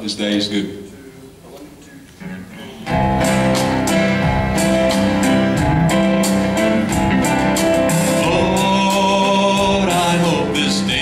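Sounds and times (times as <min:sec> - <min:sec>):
country song instrumental: 0:02.3 - 0:11.0.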